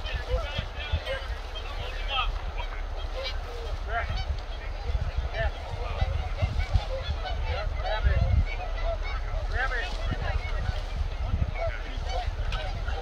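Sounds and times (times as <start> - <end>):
geese honking: 0.0 - 13.0
wind on microphone: 0.0 - 13.0.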